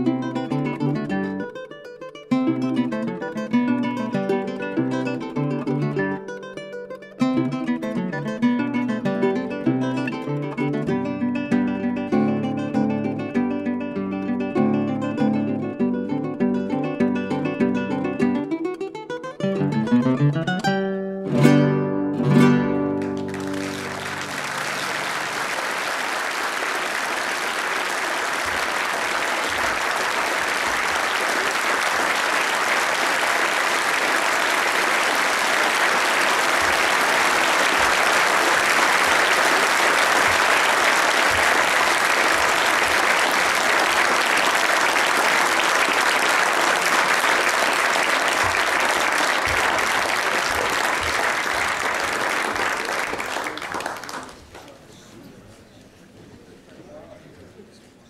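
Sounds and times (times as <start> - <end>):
audience applauding: 22.9 - 54.9.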